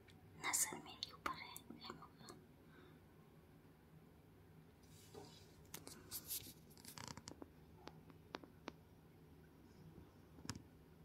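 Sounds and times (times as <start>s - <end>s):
person whispering: 0.4s - 2.4s.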